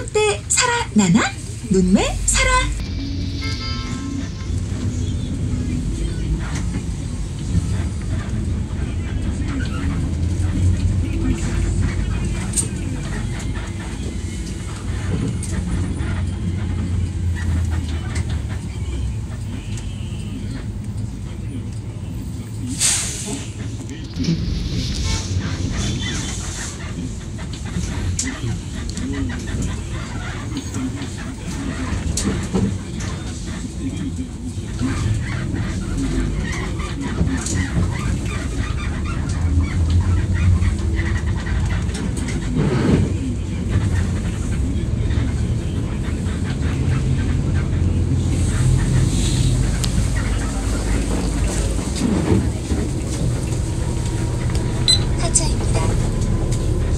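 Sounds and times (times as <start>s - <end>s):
bus engine rumbling: 0.0s - 56.9s
road and tyre noise: 0.0s - 56.9s.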